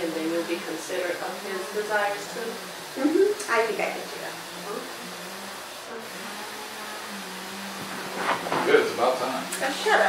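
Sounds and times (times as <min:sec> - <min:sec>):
even hiss: 0:00.1 - 0:10.0.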